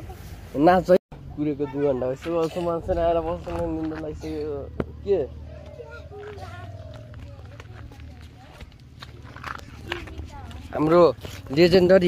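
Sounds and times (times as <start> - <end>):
faint voices: 1.2 - 12.0
running footsteps: 5.6 - 12.0.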